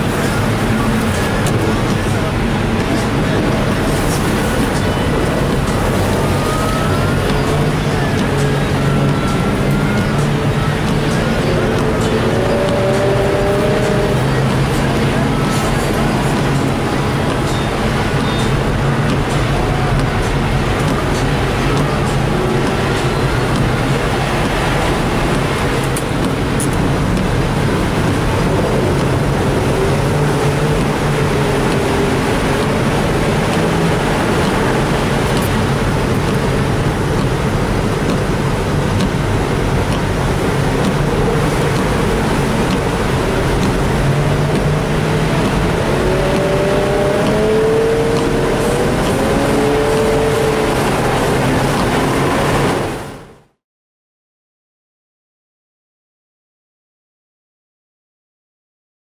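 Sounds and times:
race car engine revving: 0.0 - 53.6.

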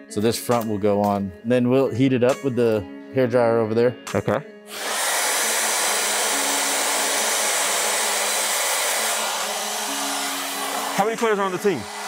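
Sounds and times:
hair dryer blowing: 4.7 - 12.0.

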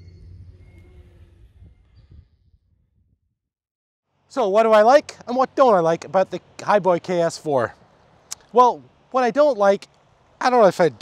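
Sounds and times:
low outdoor rumble: 0.0 - 3.2.

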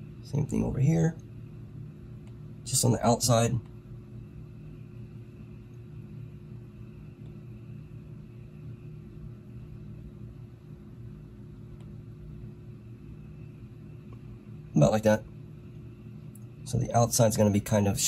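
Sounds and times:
steady low hum: 0.0 - 18.0.

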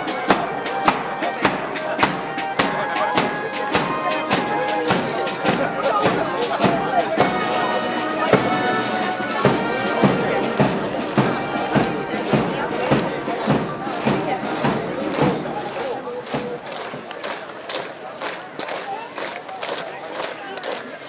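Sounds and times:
boots marching on road: 0.0 - 21.0
military band marching music: 0.0 - 21.0.

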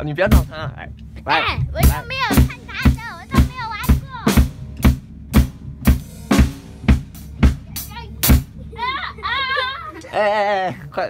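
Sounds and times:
drum kit steady beat: 0.0 - 9.5.

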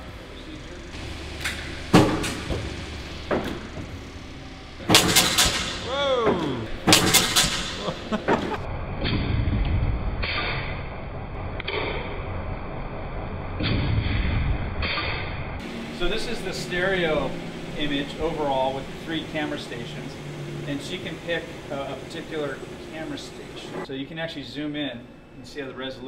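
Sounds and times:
falling whine: 0.0 - 13.6, 15.4 - 23.9
spinning wheels low rumble: 0.0 - 23.9
launcher sharp bangs: 4.8 - 5.9, 6.8 - 7.9.

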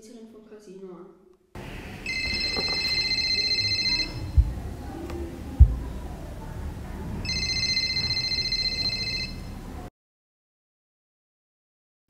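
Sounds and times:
low background noise: 0.0 - 9.9
electronic telephone ring: 2.0 - 4.4, 7.2 - 9.5.

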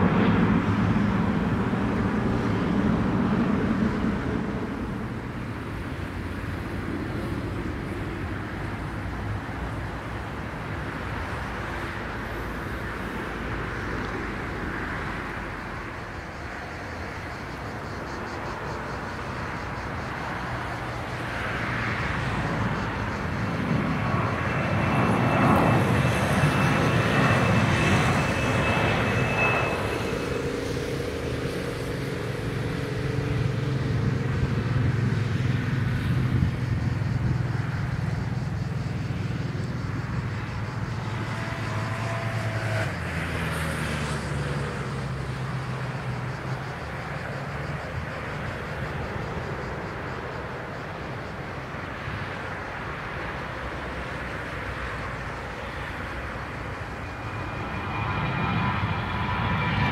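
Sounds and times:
high thin engine whine: 0.0 - 59.9
jet airliner engines rumbling: 0.0 - 59.9.

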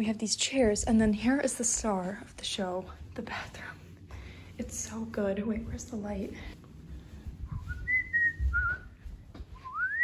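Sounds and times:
person whistling: 7.6 - 8.9, 9.6 - 10.0.

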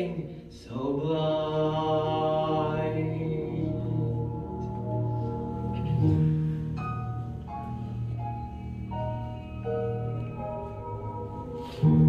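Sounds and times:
instrumental backing chord: 2.8 - 12.0.

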